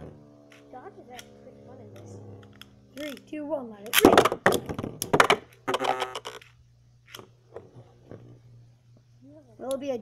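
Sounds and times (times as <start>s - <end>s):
spinning tops clicking and knocking: 0.0s - 7.3s.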